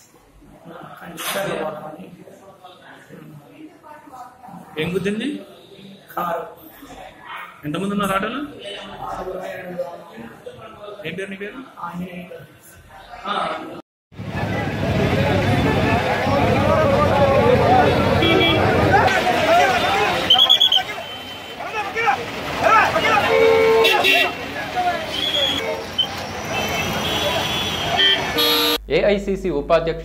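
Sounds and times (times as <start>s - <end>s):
crowd babble: 12.6s - 28.7s
passing traffic: 14.2s - 28.8s.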